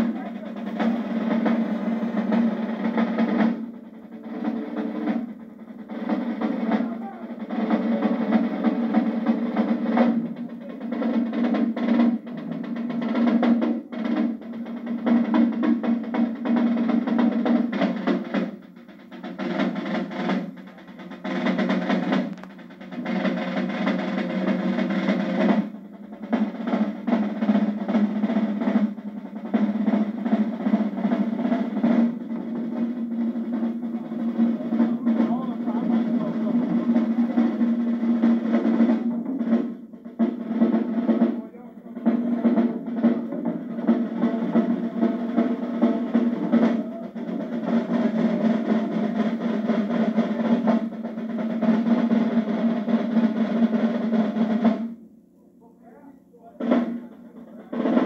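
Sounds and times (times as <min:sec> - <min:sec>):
marching drumline: 0:00.0 - 0:58.0.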